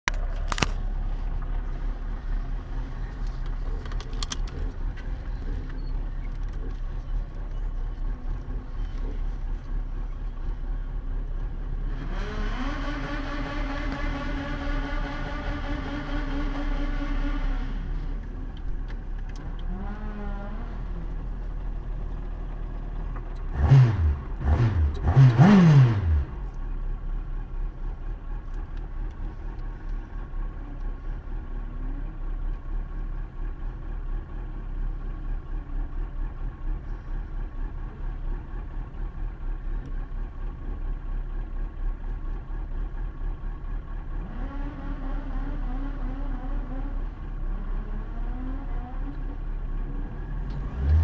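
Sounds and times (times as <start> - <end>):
car engine idling: 0.1 - 51.0
engine revving: 11.8 - 18.1, 19.4 - 21.2, 23.4 - 26.6, 44.2 - 49.3, 50.0 - 51.0.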